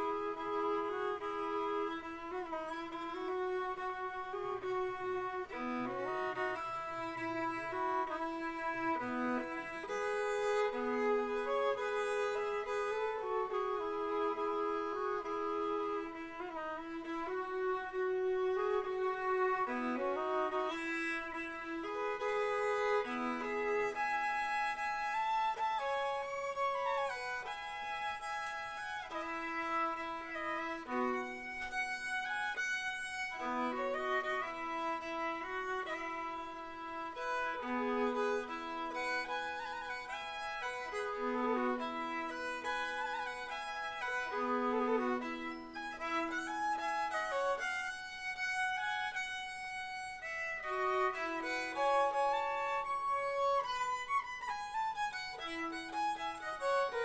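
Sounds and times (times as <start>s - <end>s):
fiddle bowed slow tune: 0.0s - 57.0s.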